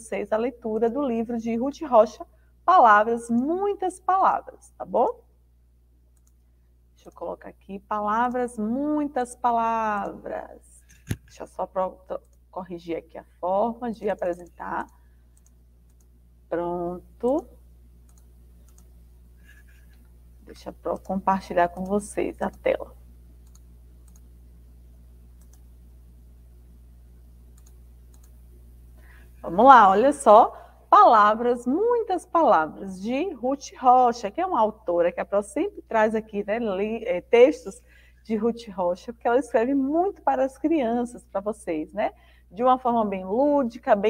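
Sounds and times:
low electrical hum: 0.0s - 44.0s
computer mouse clicks: 6.2s - 6.4s, 10.8s - 11.4s, 14.3s - 16.1s, 18.0s - 20.1s, 20.9s - 22.7s, 23.4s - 24.3s, 25.4s - 25.7s, 27.5s - 28.4s.

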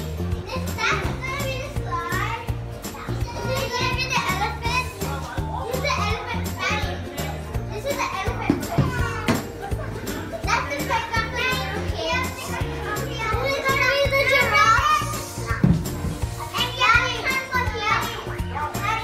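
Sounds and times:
background music with bass line: 0.0s - 19.0s
children calling out and squealing: 0.4s - 9.5s, 10.3s - 15.6s, 16.3s - 19.0s.

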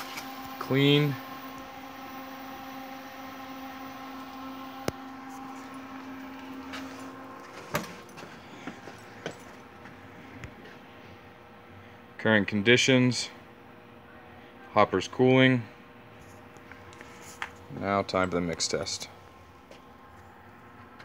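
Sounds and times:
machine motor humming: 0.0s - 21.0s.

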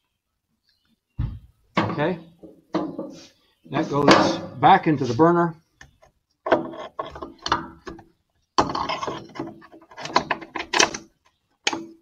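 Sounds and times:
metallic scraping and clicking: 6.4s - 8.0s, 8.6s - 12.0s.

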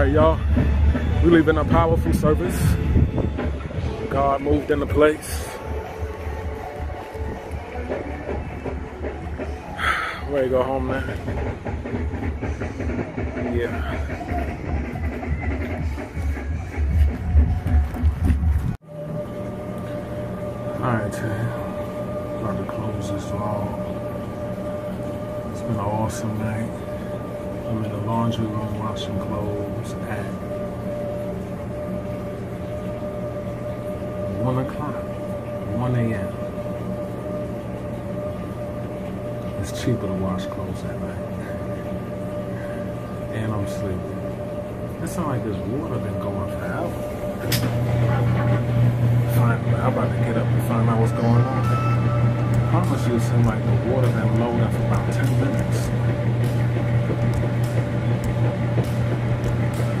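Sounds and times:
washing machine hum and whine: 0.0s - 60.0s
man talking: 1.2s - 2.8s, 4.1s - 5.6s, 10.2s - 11.2s, 22.4s - 23.9s, 25.5s - 26.8s, 43.3s - 44.2s, 45.0s - 47.0s, 49.3s - 51.7s, 52.6s - 56.0s.

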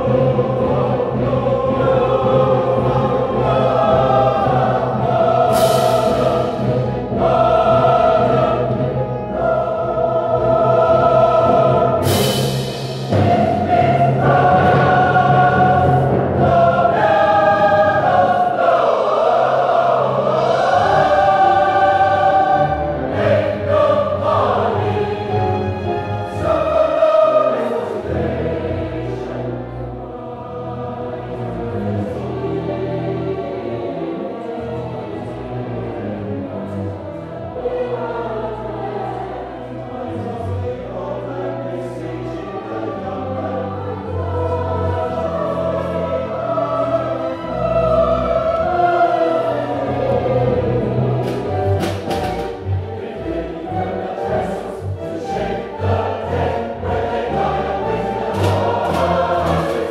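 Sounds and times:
choir singing: 0.0s - 59.9s
low accompaniment: 0.0s - 59.9s.

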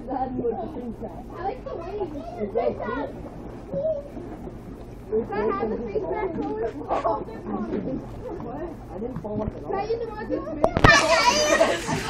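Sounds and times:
children shouting in play: 3.7s - 4.2s, 9.8s - 12.0s.

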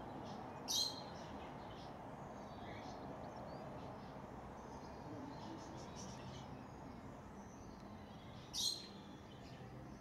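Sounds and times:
low steady background noise: 0.0s - 10.0s.

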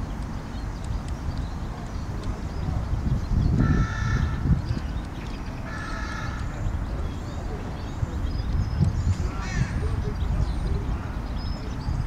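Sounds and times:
drawn-out bird calls: 0.0s - 12.0s
steady low rumble: 0.0s - 12.0s.

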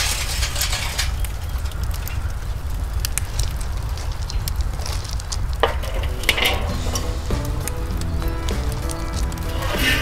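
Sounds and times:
metal grate clanking: 0.0s - 1.2s, 5.6s - 7.8s
charcoal crackling: 0.0s - 10.0s
music: 6.5s - 10.0s.

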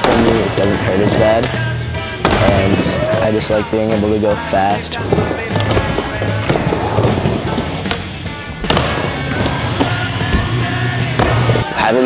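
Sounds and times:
skateboard clacks: 0.0s - 11.6s
skateboard wheels rolling: 0.0s - 11.6s
background music: 0.0s - 12.0s.

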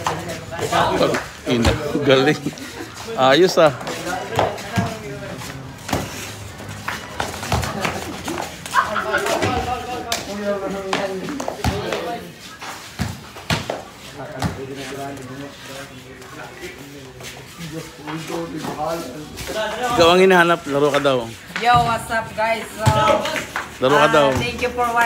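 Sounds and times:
feet on concrete court: 0.0s - 25.0s
basketball bouncing on concrete: 4.2s - 5.1s, 7.1s - 8.1s, 10.8s - 12.2s, 13.0s - 14.7s, 21.6s - 23.5s, 24.2s - 24.8s.

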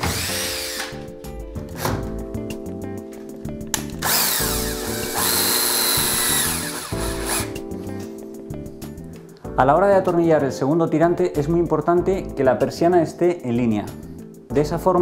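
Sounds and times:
cordless drill driving screws: 0.0s - 1.1s, 4.0s - 7.6s.

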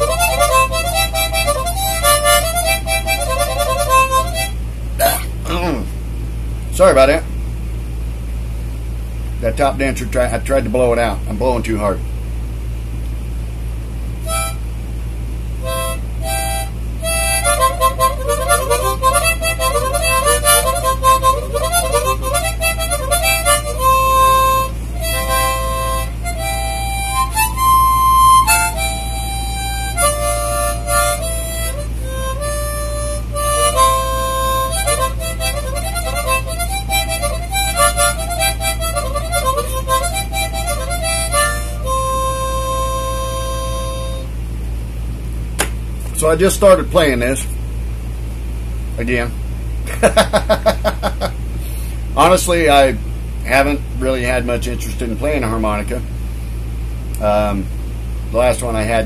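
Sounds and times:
harmonica playing a tune: 0.0s - 5.7s, 14.2s - 14.6s, 15.6s - 44.4s
steady low hum: 0.0s - 59.0s.

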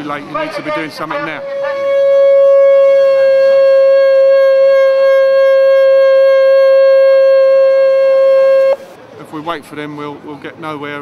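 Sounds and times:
air horn blast: 1.0s - 8.9s.

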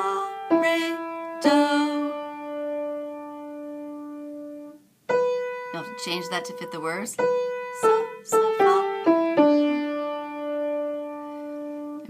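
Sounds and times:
piano single notes: 0.0s - 12.0s.

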